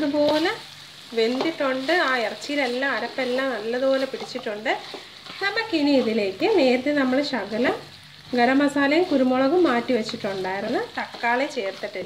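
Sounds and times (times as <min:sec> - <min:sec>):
meat sizzling in oil: 0:00.0 - 0:12.0
wooden spatula scraping wok: 0:00.0 - 0:12.0.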